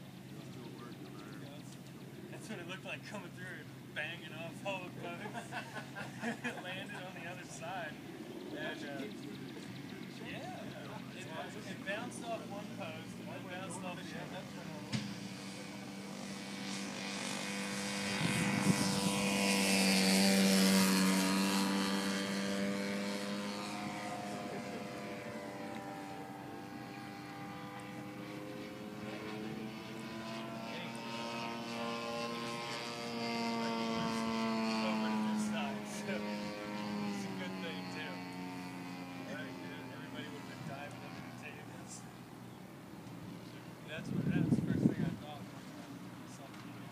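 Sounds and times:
model plane engine droning: 0.0 - 46.9.

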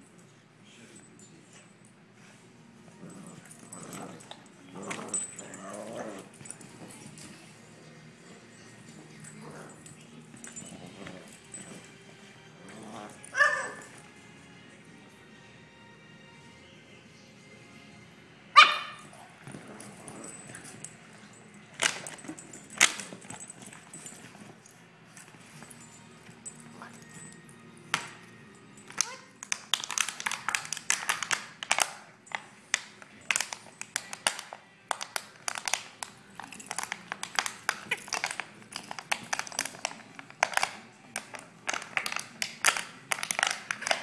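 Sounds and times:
puppies play-growling and whining: 2.7 - 14.0, 19.0 - 27.6
puppy yipping: 13.3 - 13.8.

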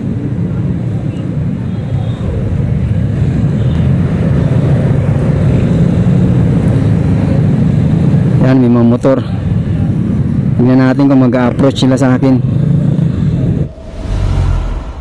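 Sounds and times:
road noise: 0.0 - 15.0.

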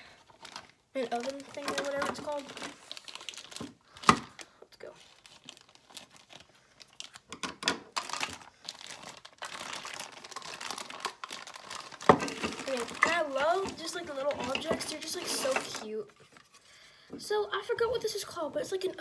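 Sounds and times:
plastic bag crinkling and tearing: 0.0 - 16.1.

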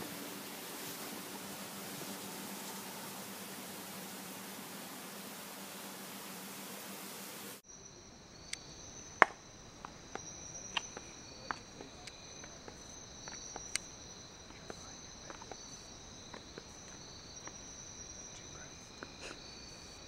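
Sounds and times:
insects trilling: 0.0 - 20.0
sharp clicks and ticks: 8.5 - 19.4.

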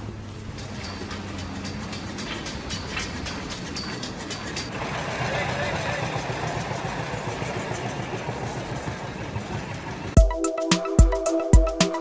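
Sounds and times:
vehicle engine noise: 0.0 - 10.2
indistinct voices: 4.6 - 9.1.

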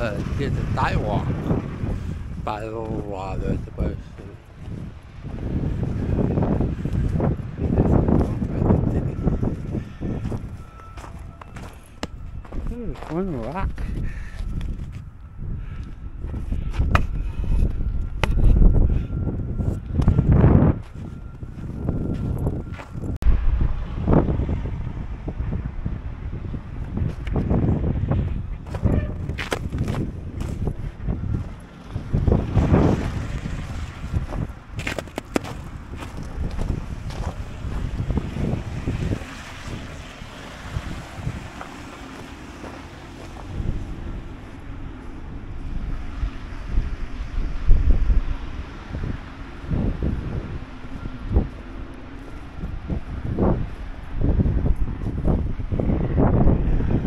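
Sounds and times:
wind buffeting microphone: 0.0 - 57.0
footsteps in snow: 9.6 - 13.6, 32.9 - 38.4, 41.5 - 45.2.

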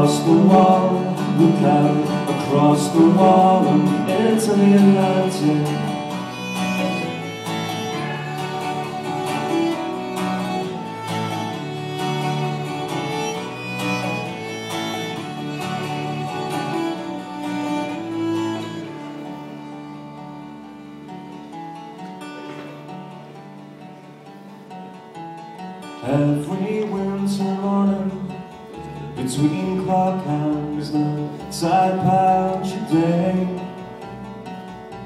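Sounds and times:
live band playing folk-rock: 0.0 - 35.0.

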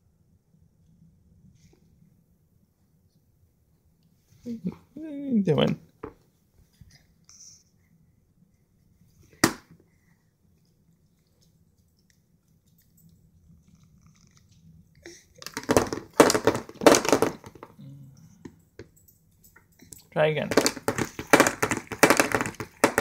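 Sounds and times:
plastic cup knocking on tray: 15.5 - 17.7, 20.5 - 23.0.

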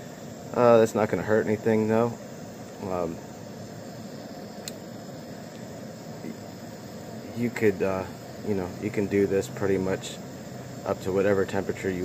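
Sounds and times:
gas burner hissing: 0.0 - 12.0
light click: 4.6 - 4.8.

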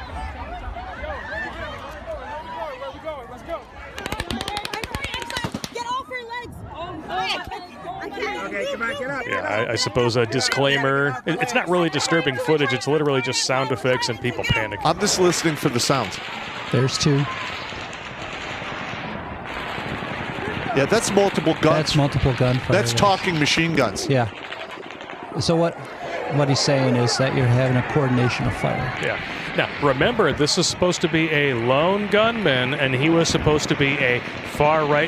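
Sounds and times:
panicked crowd voices: 0.0 - 33.5
rapid automatic gunfire: 3.9 - 5.8, 15.1 - 25.5
distant machine gun fire: 15.4 - 22.6.

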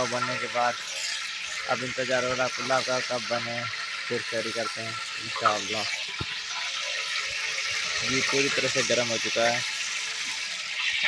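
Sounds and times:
cooking pot rushing hiss: 0.0 - 11.0.

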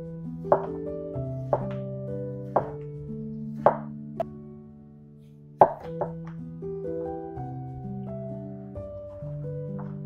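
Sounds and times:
gentle background music: 0.0 - 10.0
knife knocking on wooden board: 0.5 - 0.8, 1.5 - 1.8, 2.5 - 2.8, 3.6 - 3.9, 5.6 - 6.2.

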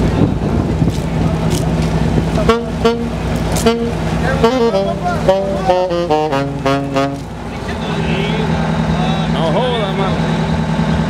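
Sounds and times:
vehicle engine idling: 0.0 - 11.0
saxophone notes: 2.4 - 7.4.

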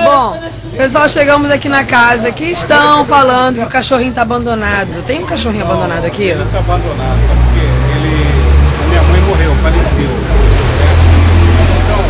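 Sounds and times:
vehicle engine running: 4.2 - 12.0.

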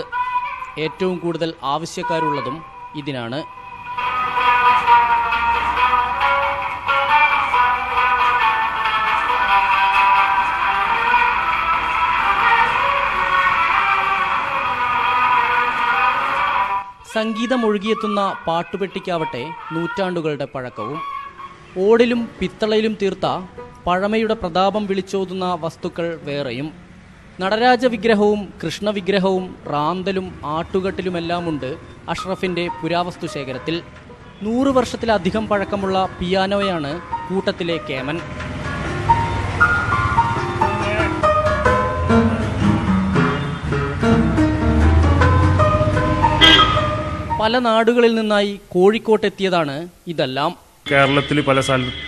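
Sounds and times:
gramophone record music: 0.0 - 25.2, 30.6 - 47.7
upright piano melody: 30.3 - 47.6.

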